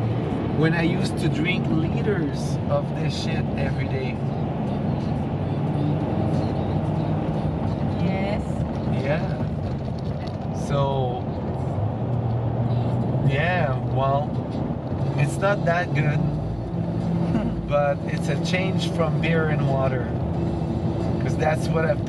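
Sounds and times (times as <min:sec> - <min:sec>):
truck engine and road drone: 0:00.0 - 0:22.0.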